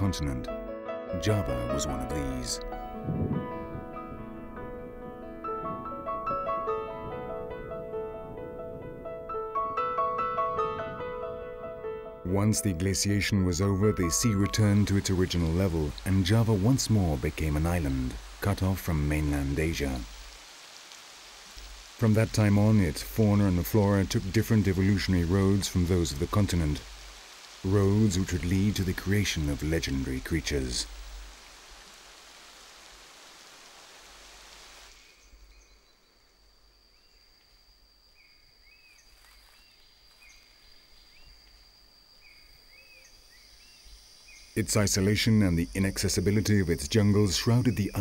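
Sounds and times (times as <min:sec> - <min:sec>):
high insect drone: 0:11.7 - 0:48.0
rain on leaves: 0:13.8 - 0:35.5, 0:39.0 - 0:41.7
bird chirping: 0:42.2 - 0:48.0.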